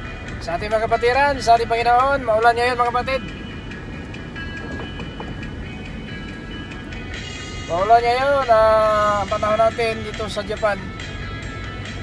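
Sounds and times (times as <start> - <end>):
faint background music: 0.0 - 12.0
road and engine noise in car: 0.0 - 12.0
man's voice: 0.4 - 3.3, 7.6 - 10.9.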